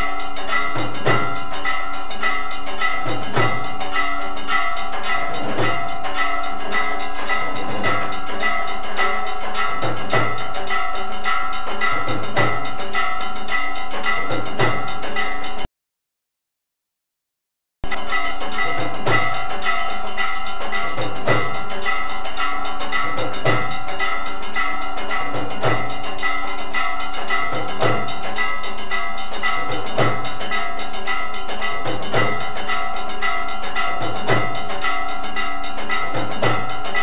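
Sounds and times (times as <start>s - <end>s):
drum beating: 0.0s - 1.8s, 2.8s - 10.8s, 11.5s - 15.6s, 17.9s - 19.9s, 20.7s - 21.8s, 22.9s - 24.0s, 25.1s - 26.1s, 27.3s - 28.3s, 29.5s - 30.5s, 31.6s - 32.6s, 33.8s - 34.8s, 36.0s - 37.0s
bells and gongs ringing: 0.0s - 15.7s, 17.8s - 37.0s
low drum beat: 0.8s - 1.5s, 3.1s - 3.9s, 9.8s - 10.6s, 11.9s - 12.8s, 14.2s - 15.1s, 20.9s - 21.7s, 23.2s - 23.8s, 25.4s - 26.0s, 27.6s - 28.2s.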